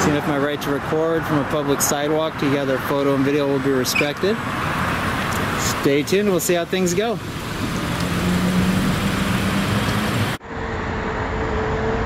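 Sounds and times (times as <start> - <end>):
rush of traffic noise: 0.0 - 12.0
low engine hum: 4.3 - 12.0.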